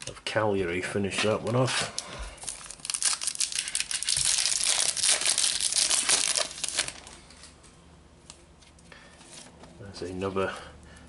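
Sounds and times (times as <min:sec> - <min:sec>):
foil wrapper tearing and crinkling: 0:02.4 - 0:07.6.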